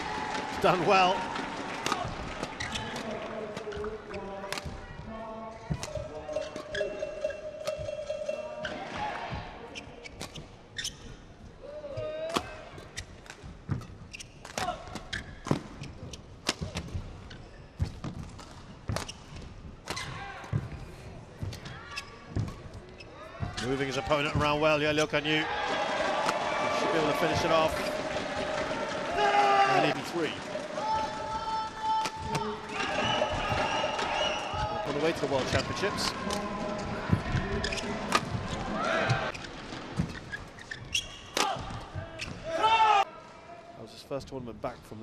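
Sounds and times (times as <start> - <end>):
sneaker squeak: 2.6 - 3.1, 5.7 - 11.3, 12.8 - 16.7, 21.4 - 24.6, 37.1 - 42.5.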